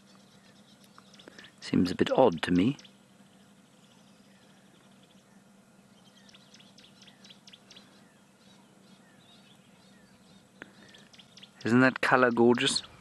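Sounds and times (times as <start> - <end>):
faint bird chirps: 0.0 - 13.0
faint steady hum: 0.0 - 13.0.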